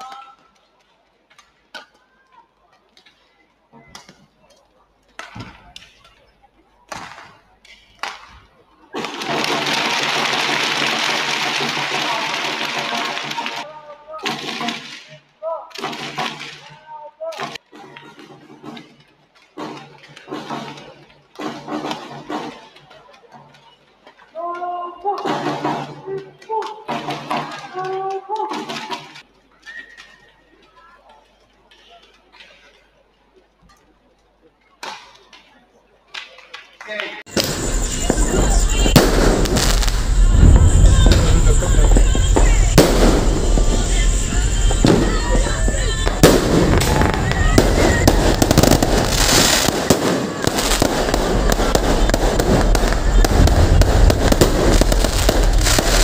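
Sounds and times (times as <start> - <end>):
voices: 0.0 - 18.2, 19.6 - 56.0
crowd cheering: 8.0 - 13.8, 36.9 - 56.0.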